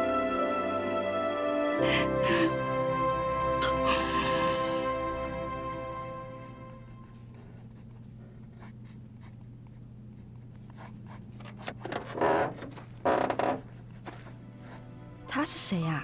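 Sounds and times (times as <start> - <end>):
music chord: 0.0 - 7.2
pen scratching on paper: 6.4 - 12.0.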